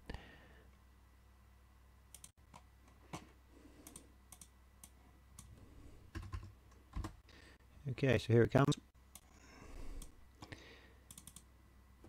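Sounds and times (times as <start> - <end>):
computer clicking: 2.1 - 2.7, 3.8 - 5.5, 11.1 - 11.5.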